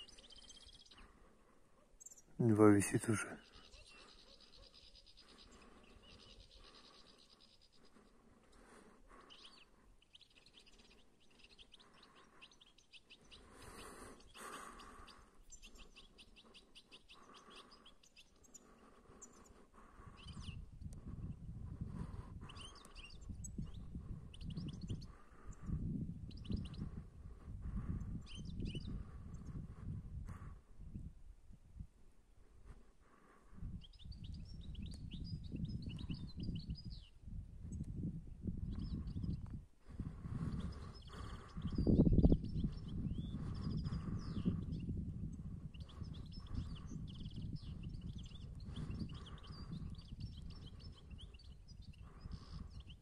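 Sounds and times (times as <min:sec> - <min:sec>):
low rumbling in gusts: 0:23.2 - 0:32.0, 0:33.6 - 0:51.2.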